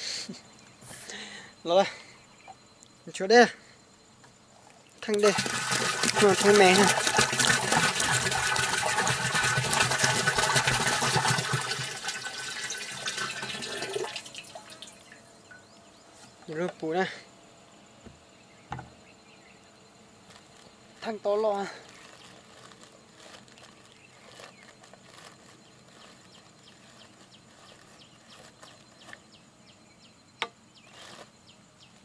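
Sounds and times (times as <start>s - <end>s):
small bird chirping: 0.4s - 3.2s, 14.8s - 17.1s, 17.7s - 32.0s
liquid dripping: 4.9s - 15.2s
liquid pouring into plastic drum: 5.0s - 15.1s.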